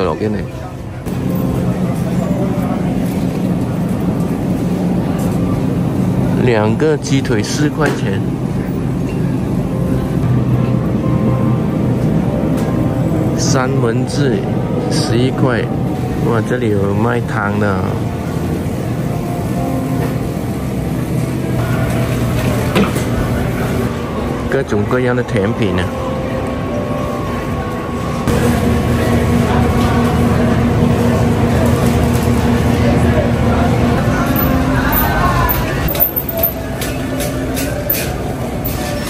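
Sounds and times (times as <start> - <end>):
murmur of shoppers: 0.0 - 39.0
refrigerator hum: 0.0 - 39.0.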